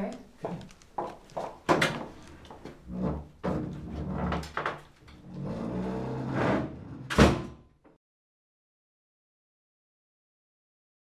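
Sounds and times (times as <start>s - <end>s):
door shutting with thud: 7.1s - 7.6s.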